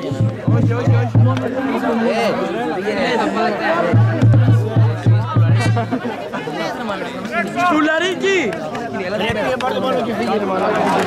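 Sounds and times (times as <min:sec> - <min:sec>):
voices shouting and talking: 0:00.0 - 0:11.0.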